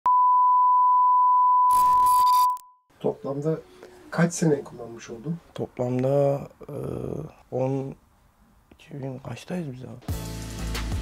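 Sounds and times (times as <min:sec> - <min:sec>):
steady electronic beep tone: 0:00.1 - 0:02.8.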